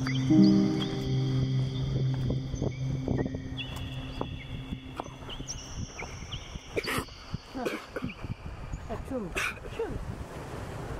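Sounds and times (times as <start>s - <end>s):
steady high tones: 0.0s - 8.7s
birds chirping: 0.0s - 9.5s.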